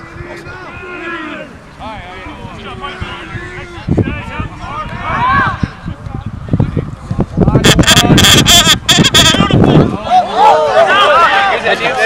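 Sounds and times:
people shouting and yelling: 0.0s - 12.0s.

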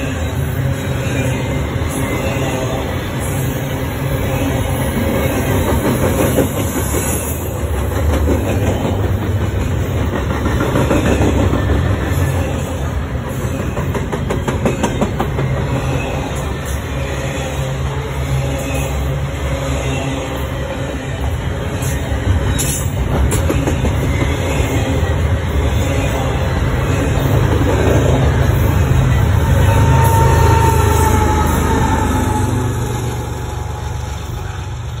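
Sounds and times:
steel wheels rumbling on rail: 0.0s - 35.0s.

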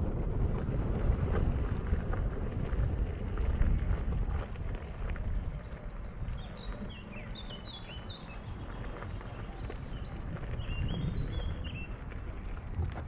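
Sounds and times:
steady low rumble: 0.0s - 13.0s
songbird singing whistled notes: 5.6s - 12.6s.

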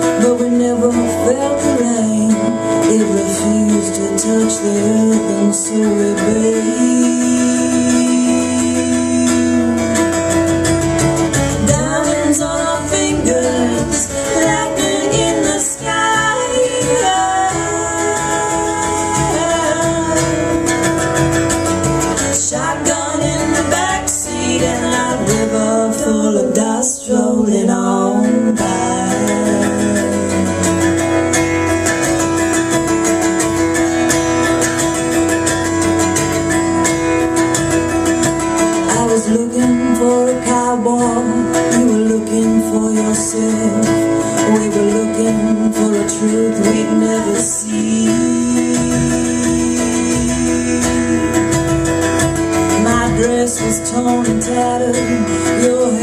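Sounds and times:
woman singing: 0.0s - 31.3s, 38.6s - 56.0s
cajon beat: 0.0s - 56.0s
strummed acoustic guitar: 0.0s - 56.0s.

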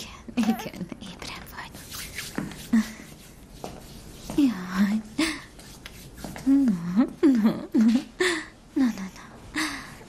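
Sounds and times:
woman whispering: 0.0s - 2.2s, 8.8s - 9.4s.

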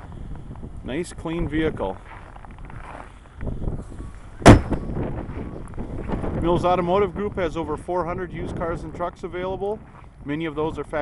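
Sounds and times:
car hood slamming shut: 4.4s - 4.9s.

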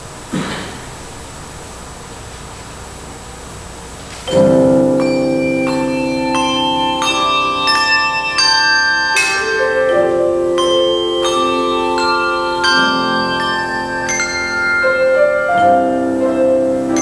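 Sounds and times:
handbell choir playing: 4.3s - 17.0s.

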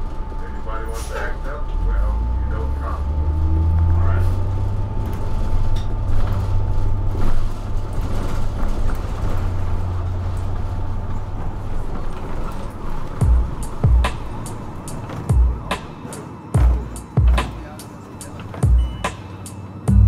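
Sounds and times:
faint rising whine: 0.0s - 7.7s
bus engine rumble: 0.0s - 20.0s
cabin rattles and knocks: 11.4s - 19.0s.

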